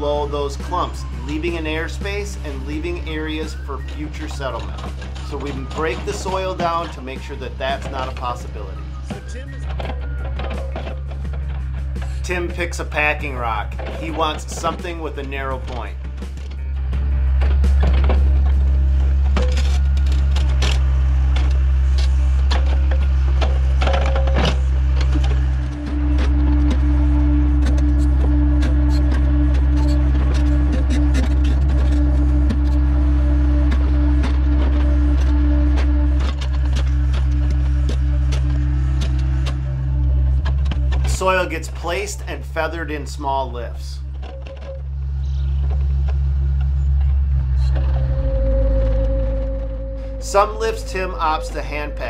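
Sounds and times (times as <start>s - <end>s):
diesel engine under load: 0.0s - 52.0s
hydraulic whine: 0.0s - 52.0s.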